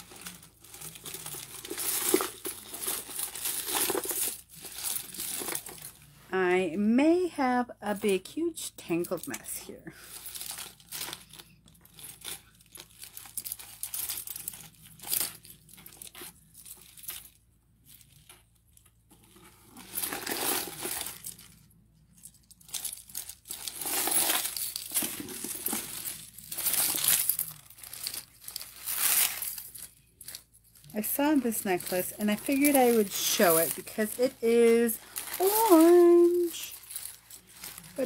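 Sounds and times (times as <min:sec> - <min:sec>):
necklaces rustling and clicking: 0:00.0 - 0:06.1, 0:08.9 - 0:38.0.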